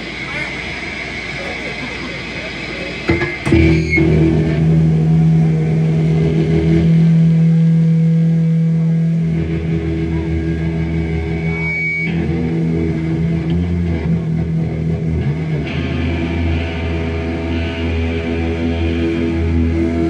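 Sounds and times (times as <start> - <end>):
distorted electric guitar drone: 0.0 - 20.0.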